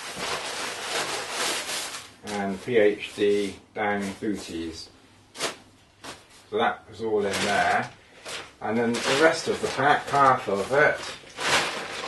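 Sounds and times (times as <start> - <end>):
stuff sack rustling: 0.0 - 3.4, 7.2 - 12.0.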